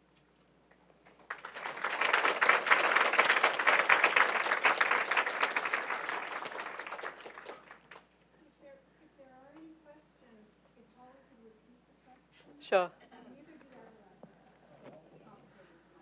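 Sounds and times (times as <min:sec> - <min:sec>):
audience applauding: 0:01.0 - 0:08.1.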